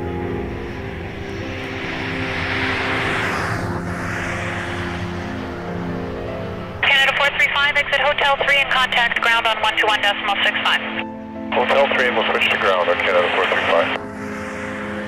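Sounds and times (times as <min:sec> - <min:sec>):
jet engines rushing: 0:00.0 - 0:15.0
low steady drone: 0:00.0 - 0:15.0
radio speech: 0:06.8 - 0:14.0.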